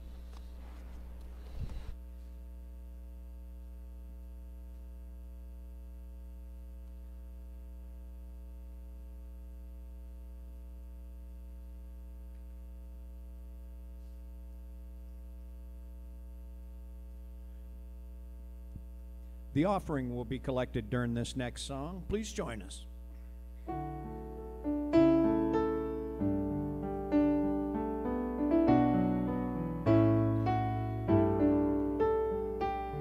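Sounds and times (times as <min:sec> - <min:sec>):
brief rustle: 0:00.0 - 0:02.4
electrical mains hum: 0:00.0 - 0:33.0.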